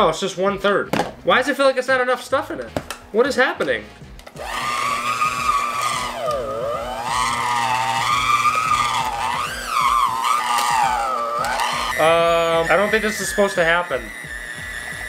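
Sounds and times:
hand mixer motor whining: 4.2 - 15.0.

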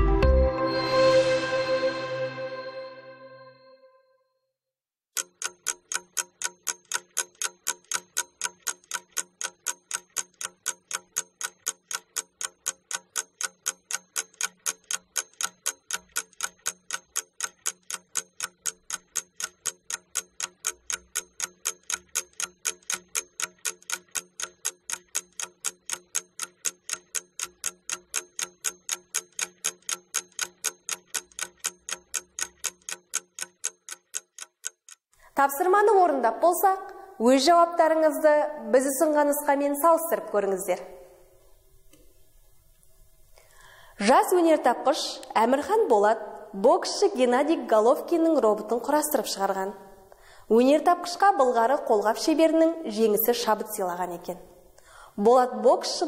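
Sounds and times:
clock ticking: 5.1 - 35.3.

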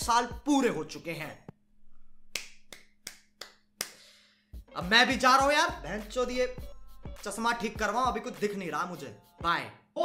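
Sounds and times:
man clapping hands: 2.3 - 4.1.

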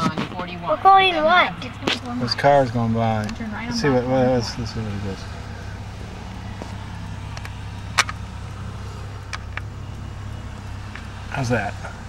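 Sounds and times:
car engine and road noise: 0.0 - 12.0
faint ticks: 3.1 - 12.0.

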